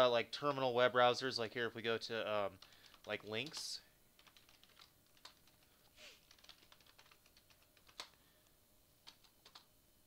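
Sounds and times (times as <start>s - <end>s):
keyboard typing: 2.6s - 8.2s, 9.0s - 9.7s.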